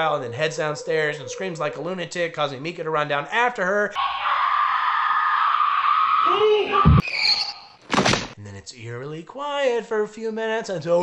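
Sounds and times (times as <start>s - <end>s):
man's voice: 0.0s - 4.0s
woman screaming: 4.0s - 7.0s.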